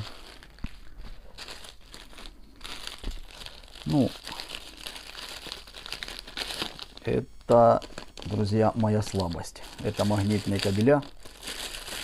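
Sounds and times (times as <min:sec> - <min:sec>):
plastic mailer bags crinkling: 0:00.0 - 0:12.0.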